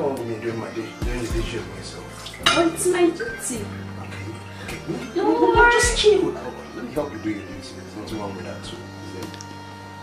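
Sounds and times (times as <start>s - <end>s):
dishes and cutlery clattering: 2.2s - 3.4s.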